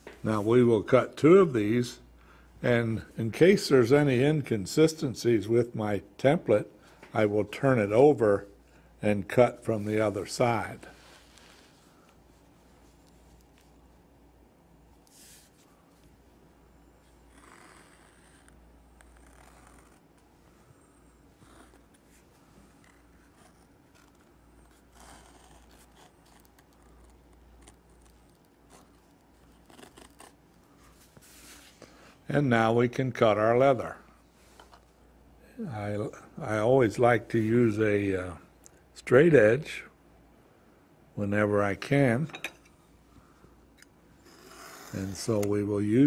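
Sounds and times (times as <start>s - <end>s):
awl scratching leather: 15.1s - 15.7s, 17.1s - 20.3s, 21.2s - 31.7s, 44.2s - 45.4s.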